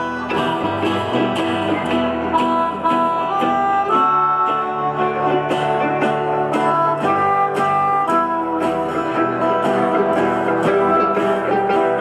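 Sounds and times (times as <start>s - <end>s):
bass guitar: 0.0s - 12.0s
harmonica melody: 0.0s - 12.0s
mandolin: 0.0s - 12.0s
strummed guitar: 0.0s - 12.0s.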